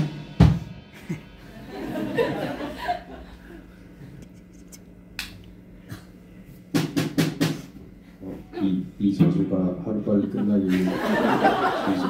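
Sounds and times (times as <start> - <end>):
sharp drum hits: 0.0 - 1.2, 6.7 - 7.8
low amplifier hum: 0.0 - 12.0.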